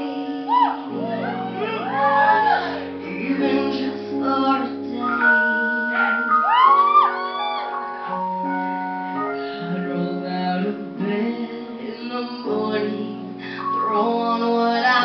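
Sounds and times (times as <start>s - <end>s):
person singing pop ballad: 0.0s - 8.5s, 9.2s - 15.0s
sustained keyboard chords: 0.0s - 15.0s.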